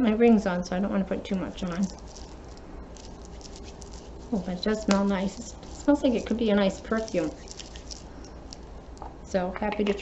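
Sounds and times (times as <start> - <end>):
hands rubbing together: 1.5 - 9.0.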